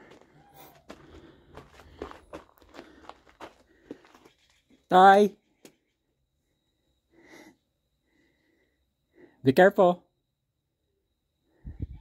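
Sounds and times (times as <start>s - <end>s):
footsteps walking: 0.0s - 4.5s.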